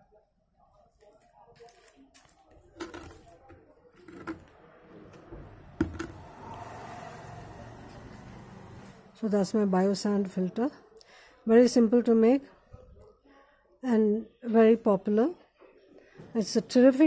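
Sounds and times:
plastic container knocks and clicks: 5.8s - 6.2s.

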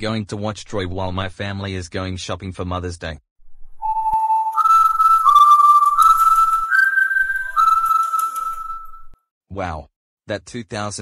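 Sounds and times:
slow whistled melody: 3.8s - 9.2s.

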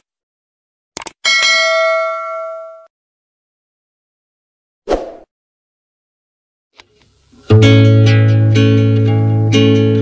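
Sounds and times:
notification bell ding: 1.3s - 2.9s.

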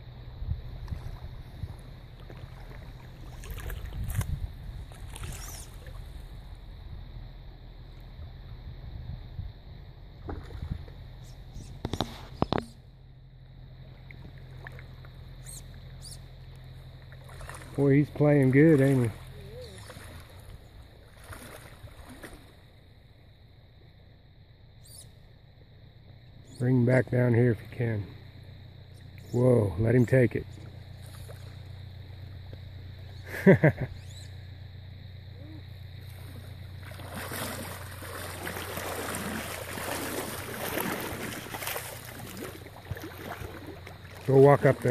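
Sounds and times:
low rumble: 0.0s - 18.5s
creek flowing: 0.8s - 6.8s, 10.2s - 22.8s, 34.0s - 44.9s
creek water running over stones: 36.1s - 44.9s.

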